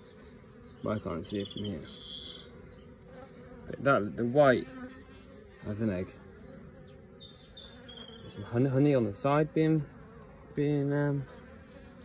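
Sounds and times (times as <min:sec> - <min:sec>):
honeybees buzzing: 0:00.0 - 0:12.0.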